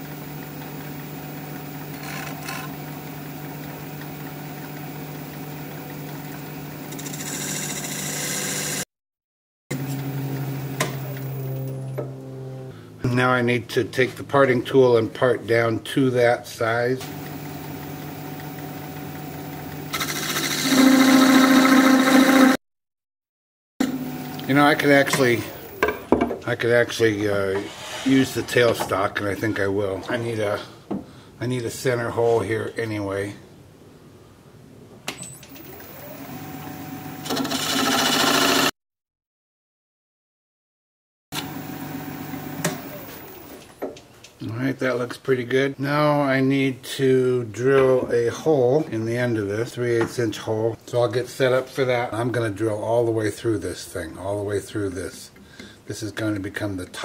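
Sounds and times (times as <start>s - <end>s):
wood lathe running: 6.9s - 8.8s, 17.1s - 22.6s, 35.6s - 38.7s
parting tool cutting wood: 19.9s - 22.6s.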